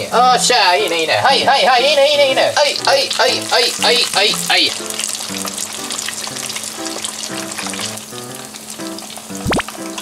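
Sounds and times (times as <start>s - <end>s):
shrimp sizzling in hot oil: 0.0s - 10.0s.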